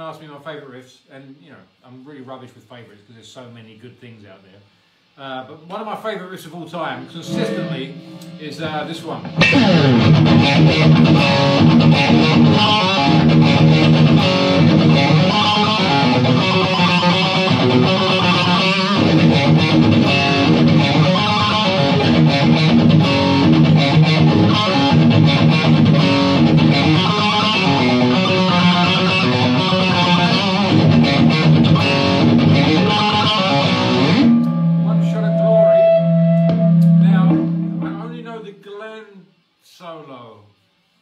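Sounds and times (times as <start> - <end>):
distorted electric guitar riffing: 7.2 - 38.2.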